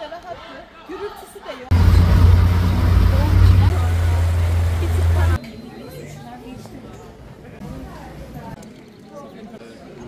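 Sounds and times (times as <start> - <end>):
boat motor rumble: 1.7 - 5.4
water churning: 1.7 - 5.4.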